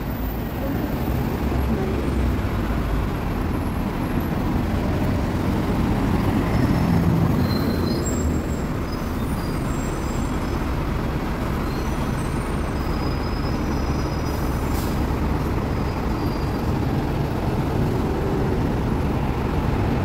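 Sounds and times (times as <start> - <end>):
heavy vehicles passing: 0.0 - 20.0.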